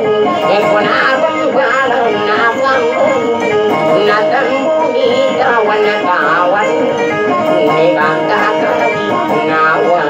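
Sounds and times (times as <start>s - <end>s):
man singing into a microphone: 0.0s - 10.0s
plucked guitars: 0.0s - 10.0s.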